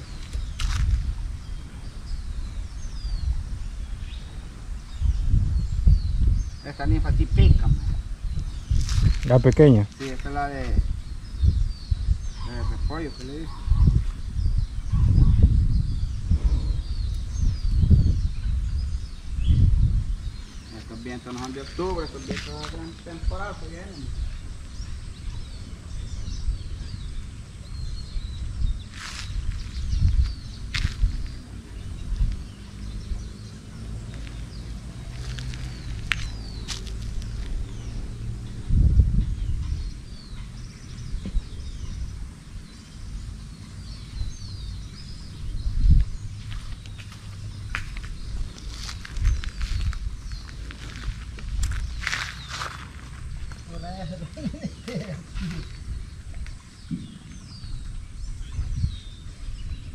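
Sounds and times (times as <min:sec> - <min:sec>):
birds chirping: 0:00.0 - 0:59.9
wind rumbling on microphone: 0:00.0 - 0:59.9.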